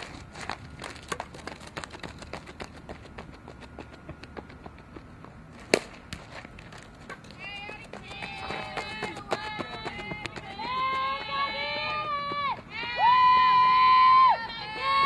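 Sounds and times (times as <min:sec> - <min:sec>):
voices shouting long calls: 0:10.5 - 0:15.0.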